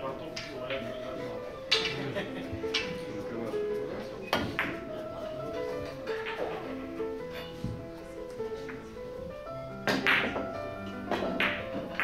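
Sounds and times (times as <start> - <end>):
billiard balls knocking: 0.2 - 12.0
cue striking billiard ball: 4.3 - 5.1, 9.8 - 12.0.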